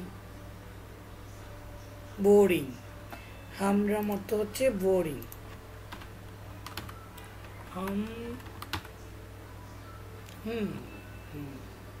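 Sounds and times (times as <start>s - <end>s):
steady low hum: 0.0s - 12.0s
man humming hmm: 10.4s - 11.7s.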